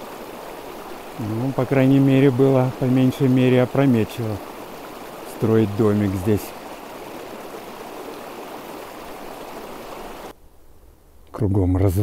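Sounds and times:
creek water rushing: 0:00.0 - 0:10.4
quiet outdoor ambience: 0:00.0 - 0:12.0.

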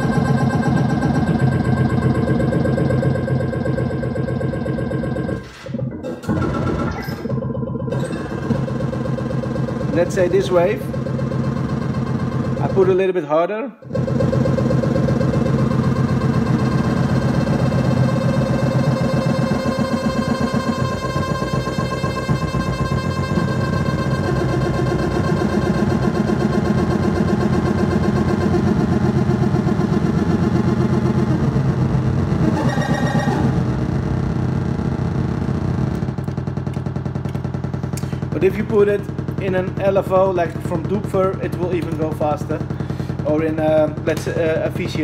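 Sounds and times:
buzzy synthesizer drone: 0:00.0 - 0:45.0.

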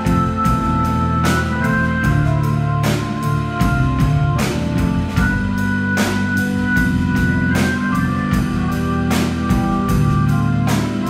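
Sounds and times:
drum kit beat: 0:00.0 - 0:11.0
guitar: 0:00.0 - 0:11.0
live rock band playing: 0:00.0 - 0:11.0
sustained organ chords: 0:00.0 - 0:11.0.

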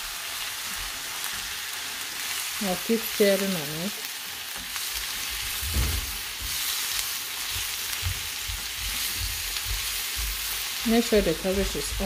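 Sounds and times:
food sizzling in a wok: 0:00.0 - 0:12.0
spatula stirring: 0:04.6 - 0:12.0
spatula knocking against pan: 0:07.5 - 0:10.6.

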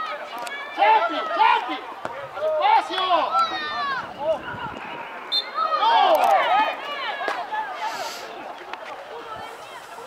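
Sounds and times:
people shouting outdoors: 0:00.0 - 0:08.4.

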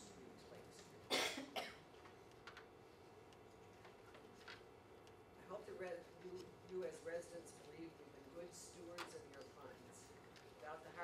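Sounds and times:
person coughing: 0:01.1 - 0:01.9.

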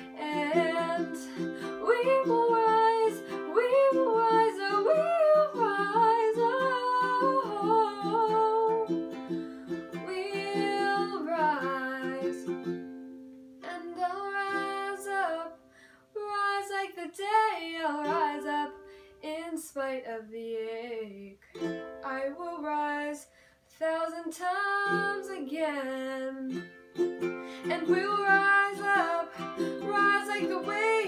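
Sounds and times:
ukulele strumming: 0:00.0 - 0:15.6, 0:16.2 - 0:18.9, 0:21.5 - 0:23.2, 0:24.1 - 0:31.0.

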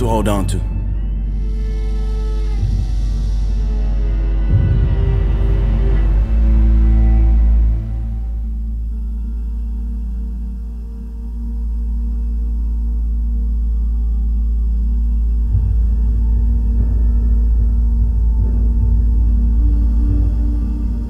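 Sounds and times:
dark ambient drone: 0:00.6 - 0:21.0.

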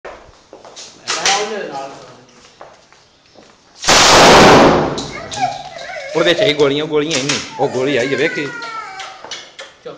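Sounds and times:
rifle burst fire: 0:03.8 - 0:05.1.

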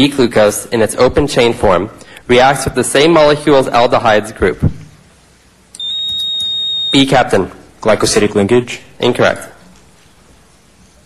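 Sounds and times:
high-pitched buzzer beep: 0:05.8 - 0:07.1.

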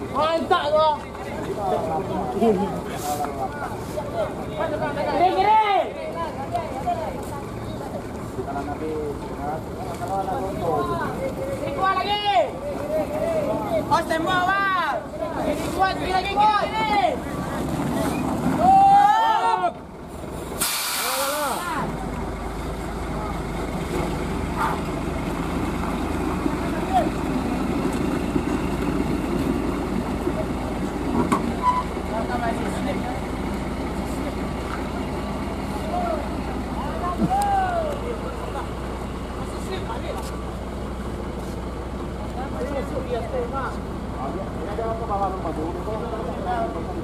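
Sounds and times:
diesel truck engine running: 0:00.0 - 0:47.0
air brakes hissing: 0:20.1 - 0:21.9.

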